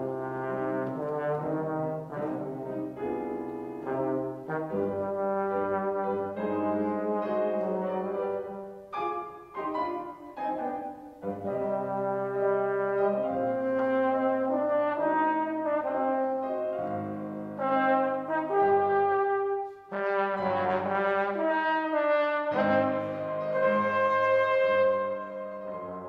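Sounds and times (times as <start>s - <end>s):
trombone solo: 0.0s - 26.0s.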